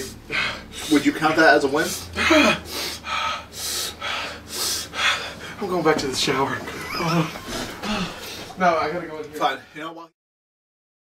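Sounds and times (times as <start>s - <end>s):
man gasping for breath: 0.1s - 1.0s, 2.0s - 5.6s, 7.5s - 8.6s.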